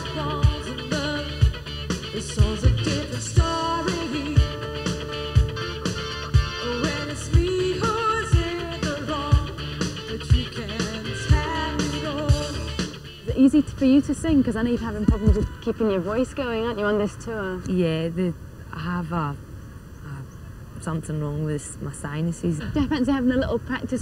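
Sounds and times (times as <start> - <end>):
person singing: 0.0 - 5.7, 6.4 - 12.9
live rock band playing: 0.0 - 13.4
kick drum beat: 15.0 - 15.5.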